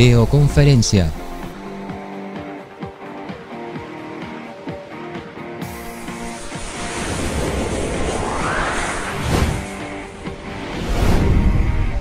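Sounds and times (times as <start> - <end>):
background music: 0.0 - 12.0
rising whoosh effect: 5.7 - 12.0.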